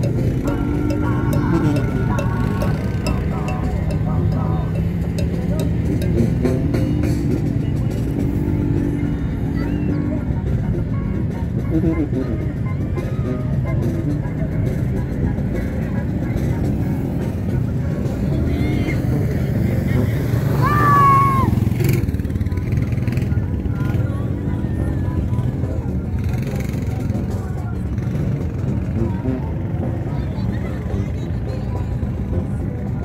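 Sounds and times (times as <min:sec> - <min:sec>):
quad bike engine running: 0:00.0 - 0:33.0
brief high shout: 0:20.6 - 0:21.6.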